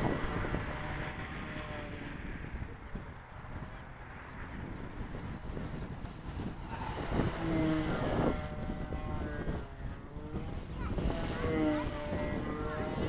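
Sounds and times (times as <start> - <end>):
model plane motor whining: 0.0 - 13.0
wind buffeting microphone: 0.0 - 13.0.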